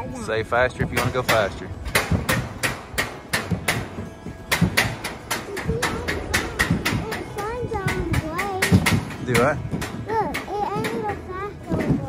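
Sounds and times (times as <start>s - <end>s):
sled wheels clacking on rails: 0.6s - 12.0s.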